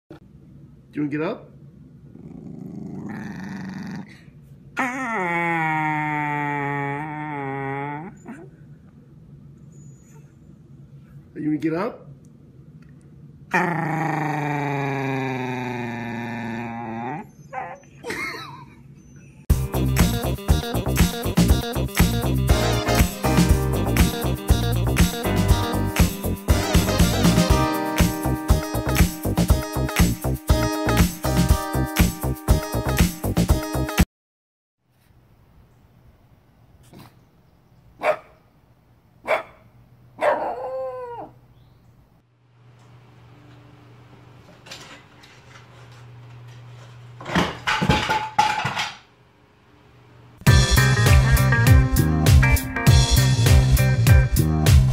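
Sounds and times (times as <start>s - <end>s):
dog groaning: 2.1s - 8.6s, 13.5s - 17.9s
dog barking: 38.0s - 38.4s, 39.2s - 41.3s.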